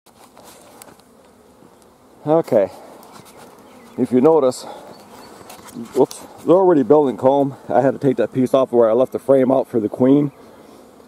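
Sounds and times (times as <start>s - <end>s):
bees buzzing faintly: 0.1s - 11.0s.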